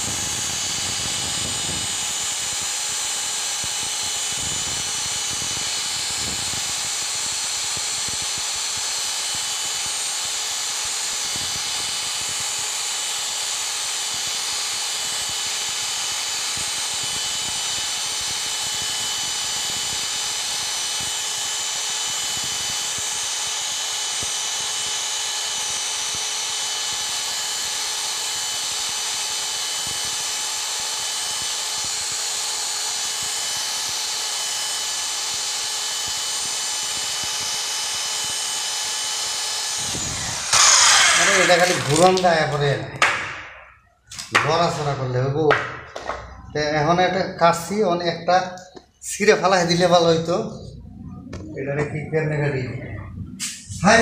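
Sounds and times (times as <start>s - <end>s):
drill grinding metal: 0.0s - 43.8s
man talking: 41.2s - 43.0s, 44.3s - 45.6s, 46.5s - 50.7s, 51.5s - 54.0s.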